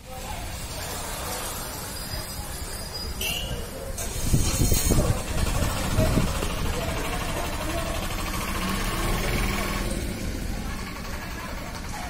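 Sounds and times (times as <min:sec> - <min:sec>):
street noise: 0:00.0 - 0:12.0
engine idling: 0:04.0 - 0:12.0.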